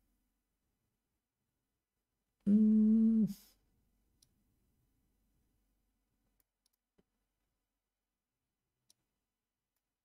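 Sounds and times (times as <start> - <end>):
man humming: 2.5 - 3.5.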